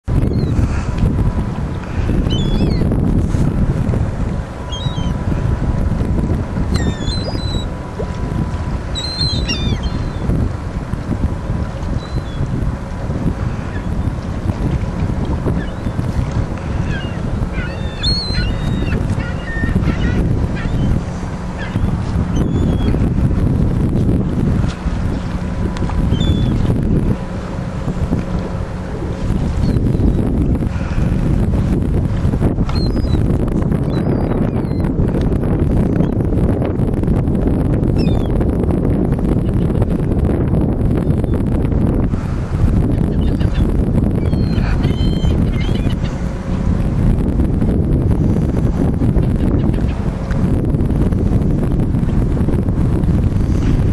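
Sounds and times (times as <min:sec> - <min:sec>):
wind buffeting microphone: 0:00.0 - 0:53.9
birds chirping: 0:04.6 - 0:05.2, 0:06.8 - 0:07.8, 0:08.9 - 0:10.3, 0:16.7 - 0:23.0, 0:26.1 - 0:26.6, 0:43.1 - 0:46.2.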